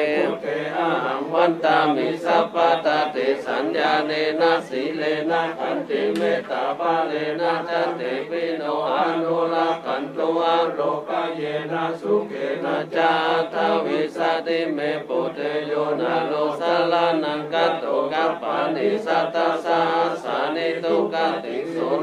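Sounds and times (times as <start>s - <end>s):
monks chanting in unison: 0.0s - 22.0s.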